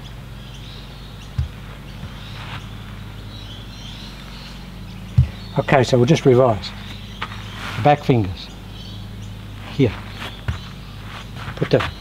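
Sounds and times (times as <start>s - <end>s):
birds chirping faintly: 0.0s - 12.0s
steady low hum: 0.0s - 12.0s
dull low thump: 1.3s - 3.0s, 5.1s - 5.7s, 9.9s - 12.0s.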